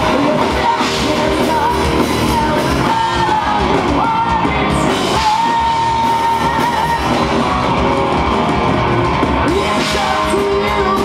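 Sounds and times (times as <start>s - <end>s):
live hard rock band: 0.0s - 11.0s.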